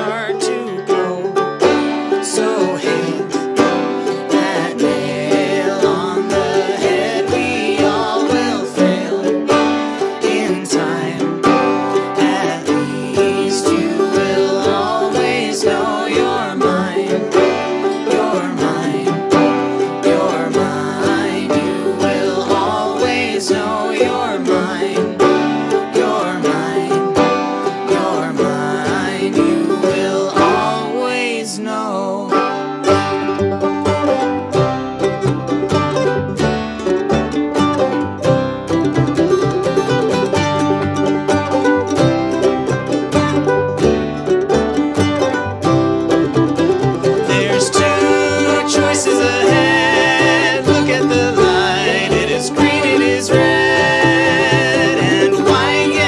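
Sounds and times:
banjo picking: 0.0s - 56.0s
bowed cello: 0.0s - 56.0s
ukulele: 0.0s - 56.0s.

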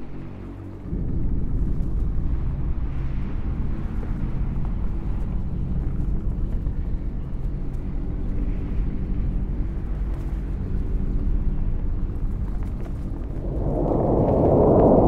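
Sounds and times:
deep machine-like rumble: 0.0s - 15.0s
low hum: 0.9s - 15.0s.

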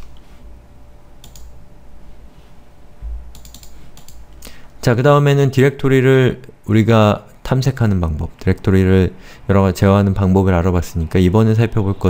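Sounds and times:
faint low hum: 0.0s - 12.0s
keyboard keys clicking: 1.2s - 1.5s, 3.3s - 4.2s.

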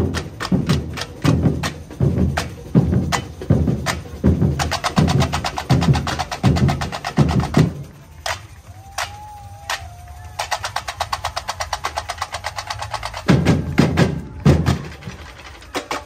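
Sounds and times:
samba drum section: 0.0s - 16.0s.

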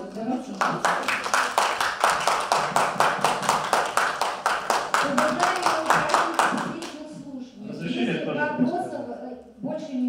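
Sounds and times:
hand clapping: 0.5s - 7.1s.

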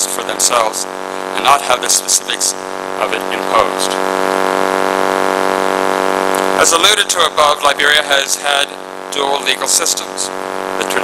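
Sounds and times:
loud buzzing hum: 0.0s - 11.0s.

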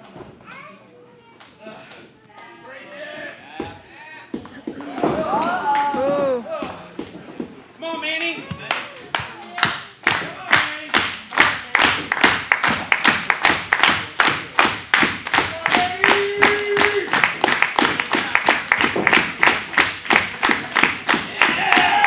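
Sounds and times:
crowd clapping in rhythm: 8.2s - 22.0s.

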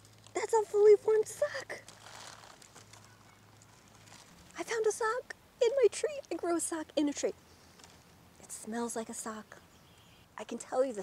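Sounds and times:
soft hiss: 0.0s - 10.9s.

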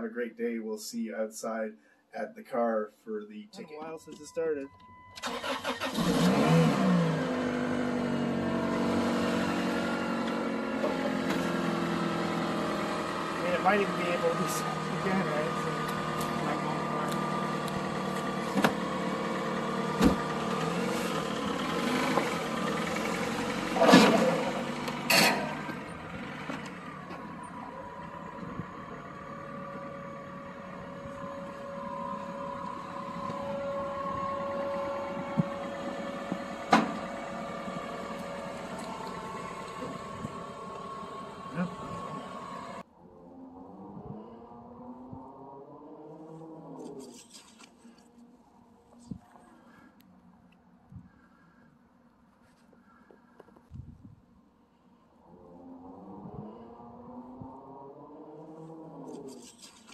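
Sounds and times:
car engine idling: 3.6s - 42.8s.

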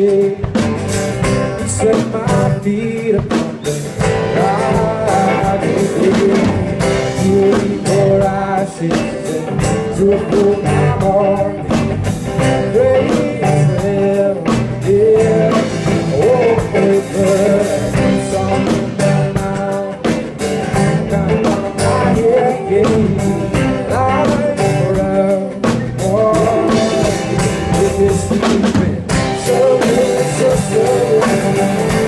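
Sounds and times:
drum kit beat: 0.0s - 32.0s
guitar: 0.0s - 32.0s
man singing: 0.0s - 32.0s.

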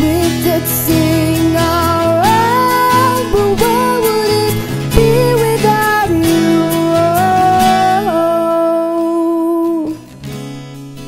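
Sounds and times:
woman singing wordless notes: 0.0s - 10.1s
acoustic guitar: 0.0s - 11.0s.

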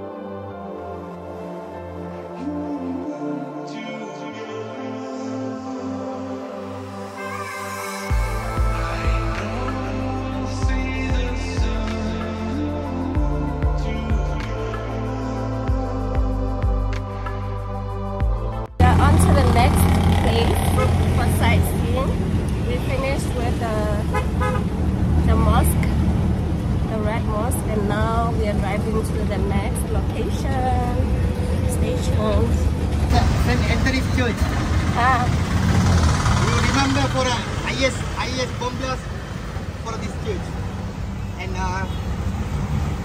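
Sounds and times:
auto-rickshaw engine droning: 18.8s - 43.0s.

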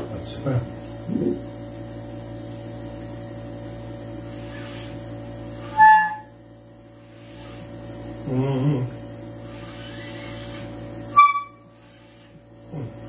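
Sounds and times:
steady background hum: 0.0s - 13.0s
high clarinet note: 11.2s - 11.7s.

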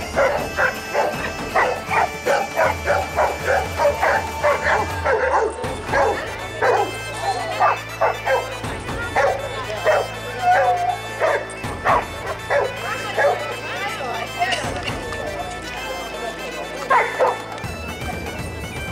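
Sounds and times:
dogs barking and yipping: 0.0s - 17.6s
background music with low notes: 0.0s - 18.9s.

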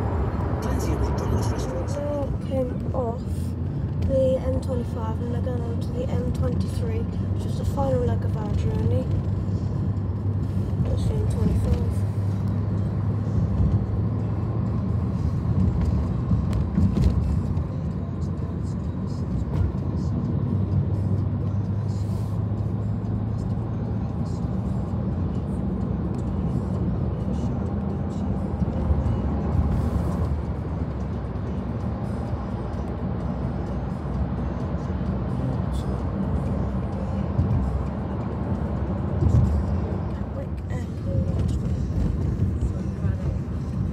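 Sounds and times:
tyre and road noise in car: 0.0s - 43.9s.

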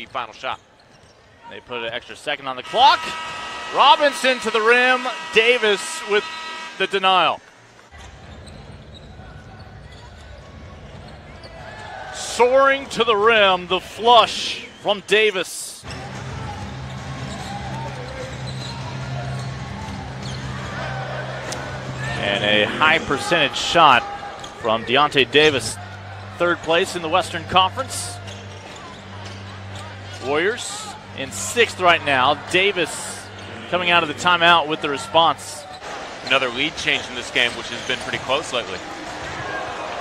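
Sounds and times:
faint shoe squeaks: 0.0s - 1.6s, 7.9s - 12.0s, 16.8s - 20.6s, 28.2s - 30.4s
low arena hum: 2.0s - 40.0s.

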